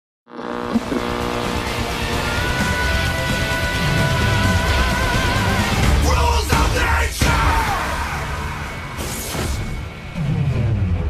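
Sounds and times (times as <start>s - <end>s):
intro soundtrack music: 0.5s - 11.0s.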